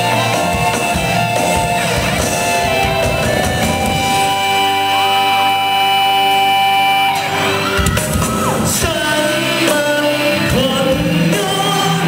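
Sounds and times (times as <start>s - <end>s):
drums: 0.0s - 12.0s
live band playing pop ballad: 0.0s - 12.0s
man singing into microphone: 8.6s - 12.0s.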